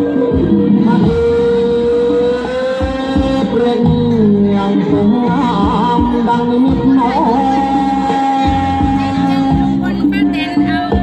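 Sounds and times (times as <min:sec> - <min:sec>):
folk dance music over loudspeaker: 0:00.0 - 0:11.0.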